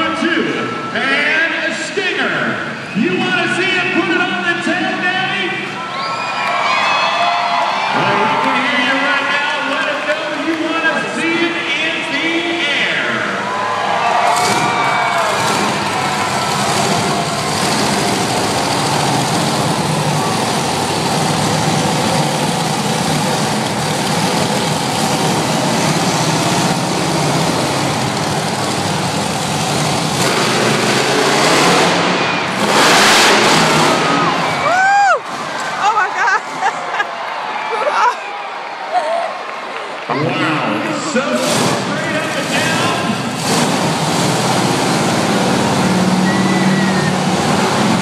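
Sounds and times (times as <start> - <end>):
monster truck engine revving: 8.0 - 36.8, 40.4 - 48.0.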